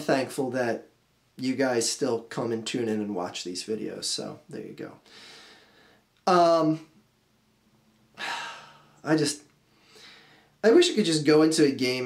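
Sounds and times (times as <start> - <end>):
man sighing: 8.2 - 9.0.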